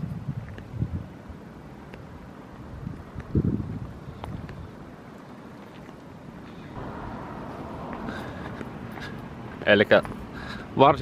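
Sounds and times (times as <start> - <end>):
wind buffeting microphone: 0.0 - 5.1
faint rushing noise: 4.7 - 11.0.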